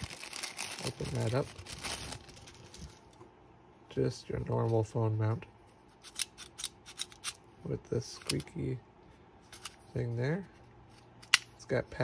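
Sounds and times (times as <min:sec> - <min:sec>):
plastic bag crinkling: 0:00.0 - 0:03.2.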